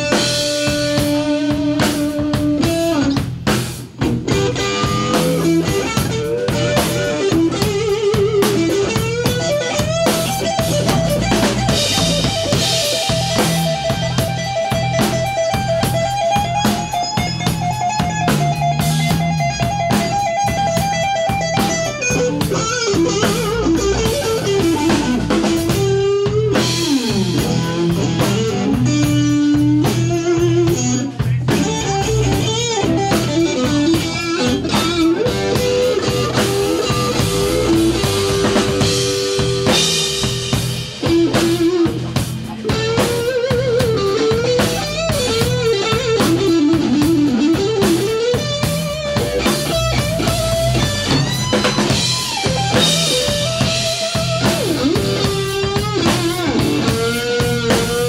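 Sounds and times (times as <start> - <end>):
bass line: 0.0 - 58.0
drum kit: 0.0 - 58.0
electric guitar lead: 0.0 - 58.0.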